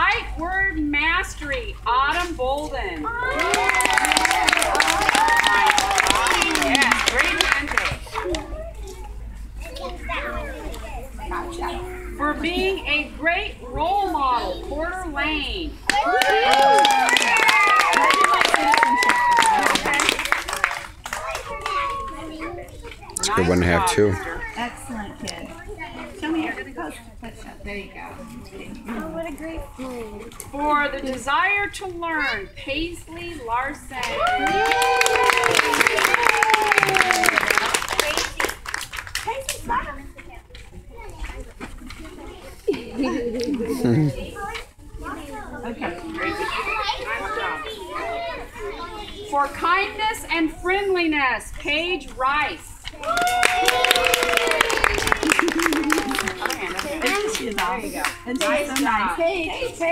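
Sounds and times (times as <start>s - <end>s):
young children chattering: 2.6s - 15.9s, 17.2s - 34.0s, 39.3s - 53.1s, 54.2s - 59.9s
adult speech: 23.2s - 24.3s.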